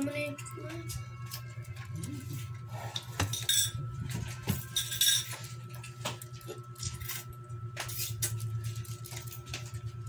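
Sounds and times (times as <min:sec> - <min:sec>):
forks and spoons clinking on plates: 0:02.9 - 0:09.8
cutlery clatter: 0:04.7 - 0:05.4.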